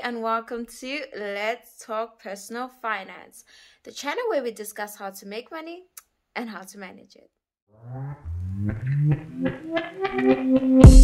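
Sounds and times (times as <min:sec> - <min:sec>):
intro music with stepping notes: 0:08.2 - 0:11.0.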